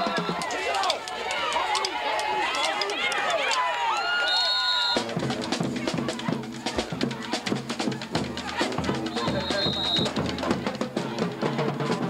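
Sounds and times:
band music with drum beat: 0:00.0 - 0:00.8, 0:04.3 - 0:12.0
crowd shouting and cheering: 0:00.0 - 0:12.0.

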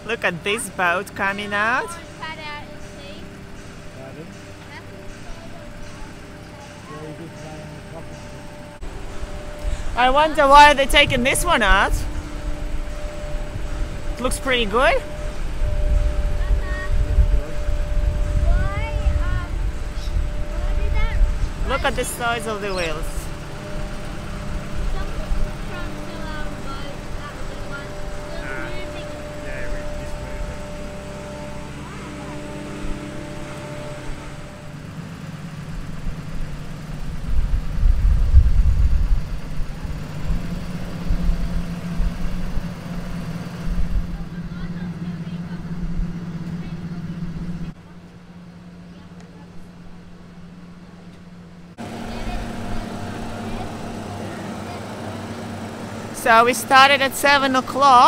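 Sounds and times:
machine engine humming: 0:00.0 - 0:58.0.

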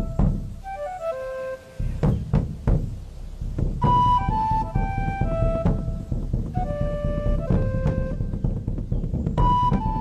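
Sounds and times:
deep drum beats: 0:00.0 - 0:01.1, 0:01.8 - 0:10.0.

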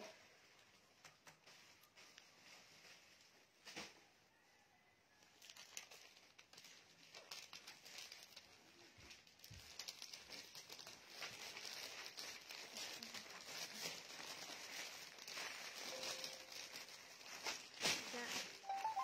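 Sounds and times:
plastic bag crinkling: 0:05.3 - 0:19.0.

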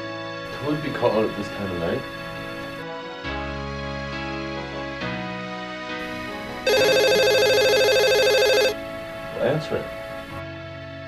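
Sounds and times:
soft background music: 0:00.0 - 0:11.0
telephone trilling ring: 0:06.0 - 0:08.8.

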